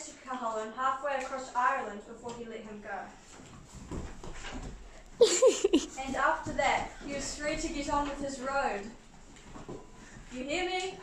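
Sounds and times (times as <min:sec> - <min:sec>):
children running on carpet: 0:03.2 - 0:11.0.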